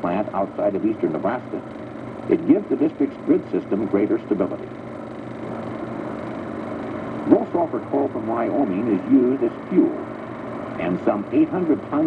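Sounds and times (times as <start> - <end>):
faint low hum: 0.0 - 12.0
machine drone: 0.0 - 12.0.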